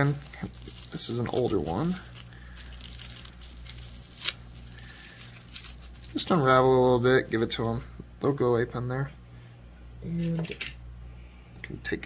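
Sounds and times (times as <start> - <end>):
snake skin crinkling and tearing: 0.0 - 7.8
sharp crackle of snake skin: 0.0 - 7.9.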